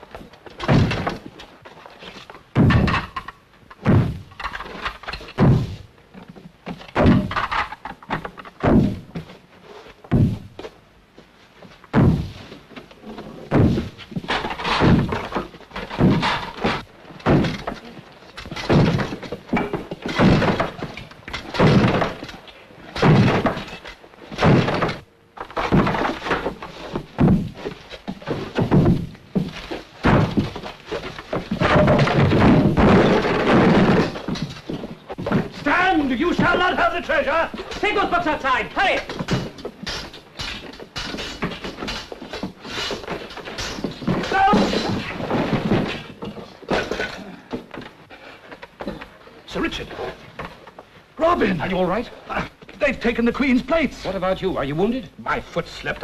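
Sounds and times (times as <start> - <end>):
scuffle knocks and clatter: 0.0 - 56.0
wooden door being battered: 0.1 - 1.5, 2.3 - 9.3, 10.1 - 10.6, 11.9 - 12.5, 13.2 - 49.2
heavy thud: 0.6 - 1.3, 2.5 - 3.1, 3.8 - 4.3, 5.4 - 5.9, 8.6 - 9.3, 10.0 - 10.7, 11.9 - 12.6, 13.5 - 17.8, 18.4 - 22.4, 23.0 - 35.7.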